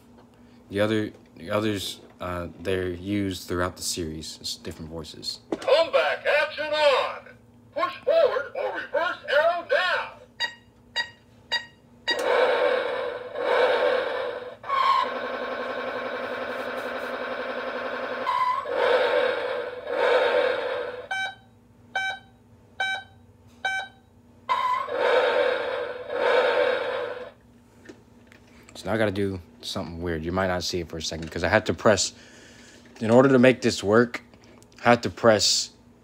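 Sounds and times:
toy short beeps: 10.4s - 12.2s
toy engine-like bursts: 11.0s - 21.4s, 24.5s - 27.4s.

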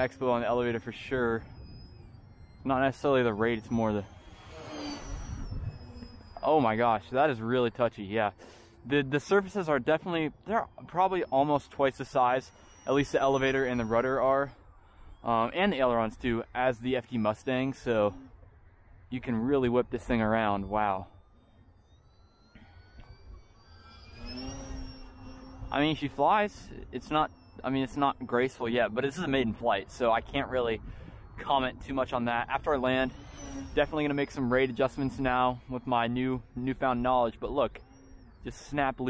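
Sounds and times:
wind rumble on microphone: 0.0s - 8.0s, 22.2s - 39.0s
electric motor and propeller whine: 0.0s - 39.0s.

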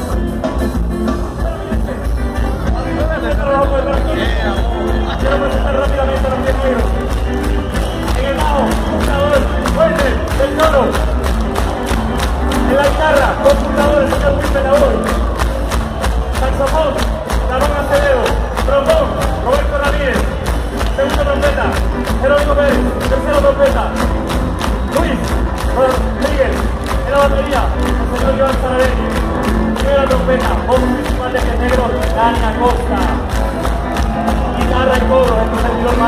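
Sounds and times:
ska band playing live: 0.0s - 36.0s.

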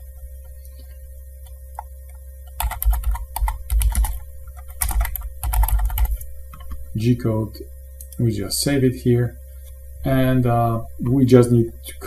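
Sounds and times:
faint steady hum: 0.0s - 12.0s
computer keyboard typing: 1.4s - 6.9s.

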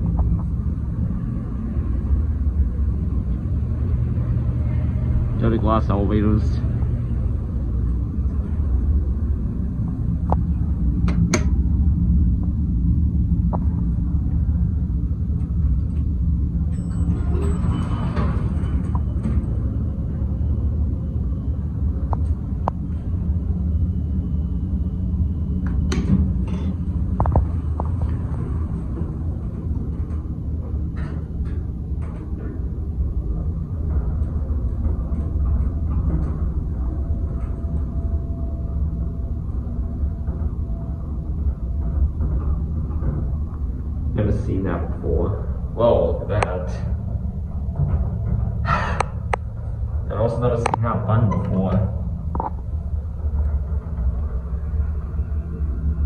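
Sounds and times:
low rumble: 0.0s - 56.0s.

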